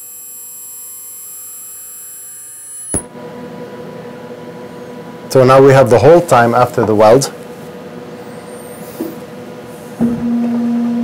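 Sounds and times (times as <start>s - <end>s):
ultrasonic welder high-pitched whine: 0.0s - 3.9s
sharp click: 2.8s - 3.1s.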